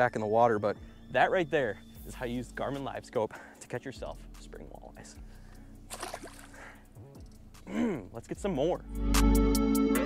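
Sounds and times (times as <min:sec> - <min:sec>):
fish splashing into water: 0:05.9 - 0:06.6.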